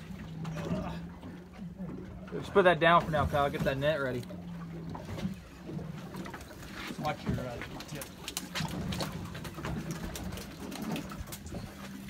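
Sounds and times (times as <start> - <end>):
knocks and clicks of fish handling: 4.7 - 12.0.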